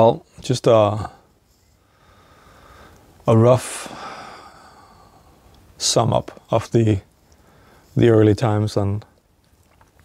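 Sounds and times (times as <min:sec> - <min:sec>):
man speaking: 0:00.0 - 0:01.2, 0:03.2 - 0:04.1, 0:05.8 - 0:07.1, 0:08.0 - 0:09.2
man sighing: 0:03.7 - 0:05.3.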